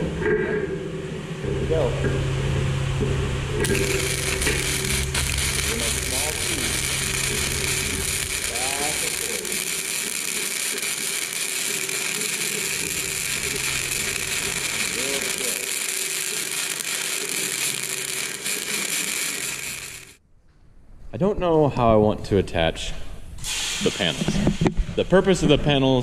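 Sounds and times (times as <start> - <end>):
welder arc crackling: 3.6 - 20.2.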